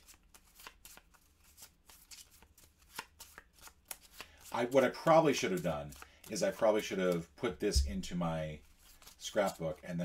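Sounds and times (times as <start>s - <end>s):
cards being shuffled: 0.0s - 9.7s.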